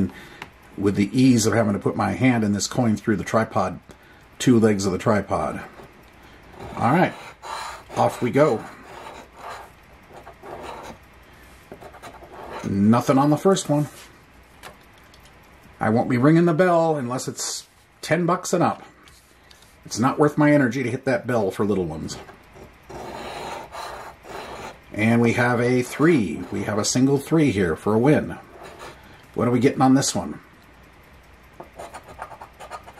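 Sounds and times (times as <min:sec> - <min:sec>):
coin scraping lottery ticket: 0:06.5 - 0:11.0, 0:11.8 - 0:12.8, 0:22.1 - 0:24.8, 0:28.4 - 0:29.0, 0:31.6 - 0:32.9.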